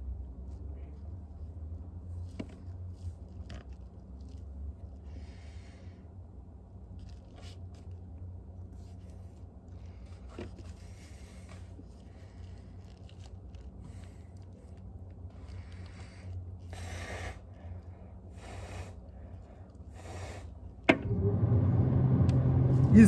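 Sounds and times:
soft rustles: 0:06.7 - 0:16.7
freezer humming: 0:20.9 - 0:23.0.

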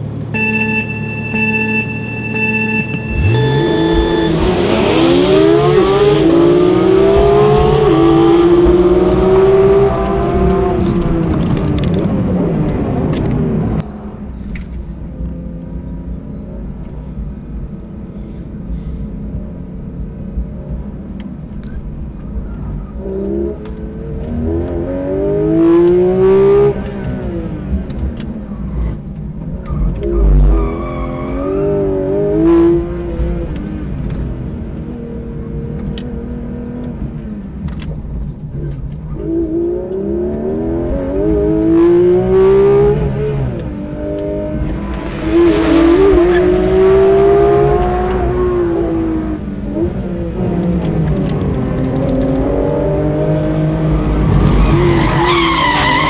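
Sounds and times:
car engine revving: 0:00.0 - 0:13.8, 0:39.2 - 0:56.0.

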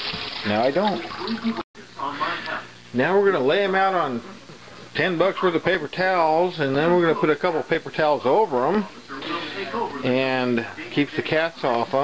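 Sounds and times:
faucet sprayer running water: 0:00.0 - 0:01.6
man's voice: 0:05.0 - 0:12.0.

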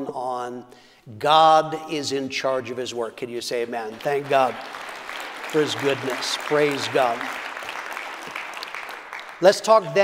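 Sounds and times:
congregation applauding: 0:03.8 - 0:10.0.

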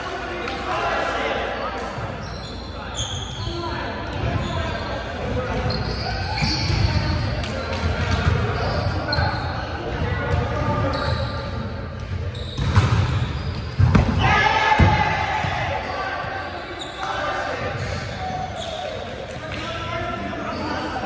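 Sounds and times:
balls bouncing on gym floor: 0:06.4 - 0:11.1, 0:11.9 - 0:16.4.

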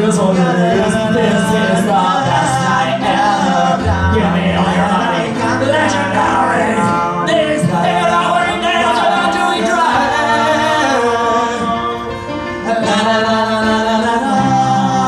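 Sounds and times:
music: 0:00.0 - 0:15.0
person singing: 0:00.0 - 0:15.0.

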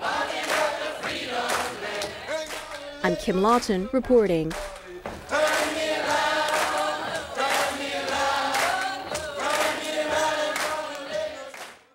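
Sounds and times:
group singing slow song: 0:00.0 - 0:03.3, 0:04.6 - 0:11.9.

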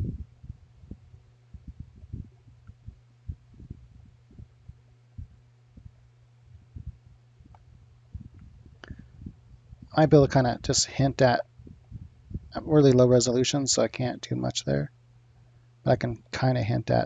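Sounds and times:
soft low thumps: 0:00.0 - 0:10.1, 0:11.5 - 0:12.6
steady low hum: 0:00.0 - 0:17.0.

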